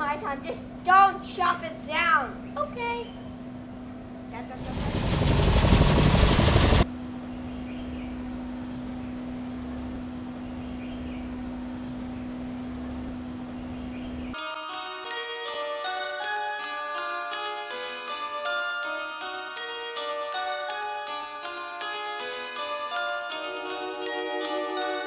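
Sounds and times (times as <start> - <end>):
outdoor ambience: 0.0 - 14.4
bell-like mallet music: 14.4 - 25.0
steady hum: 23.0 - 25.0.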